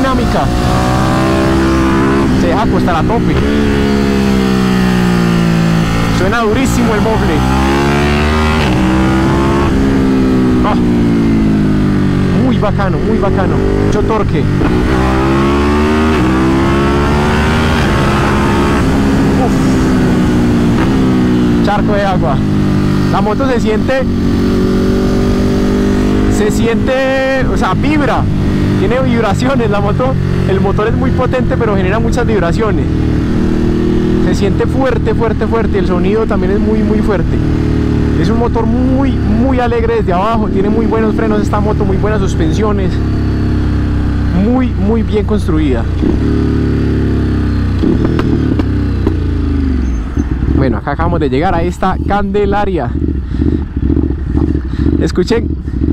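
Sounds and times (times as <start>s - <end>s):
motorcycle engine running: 0.0s - 55.9s
wind noise on microphone: 17.3s - 21.6s
motorcycle engine slowing down: 51.9s - 55.9s.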